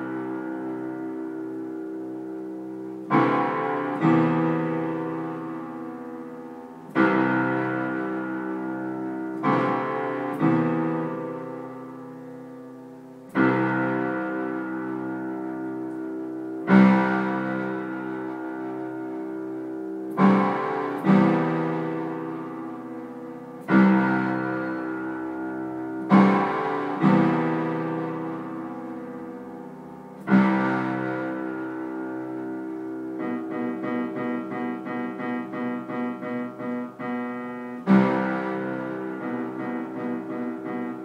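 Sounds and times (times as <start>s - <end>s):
held piano chord: 0.0s - 41.0s.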